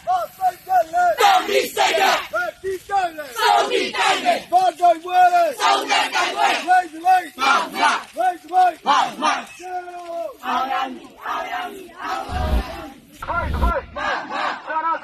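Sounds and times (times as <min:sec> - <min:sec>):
crowd chanting slogans: 0:00.0 - 0:15.0.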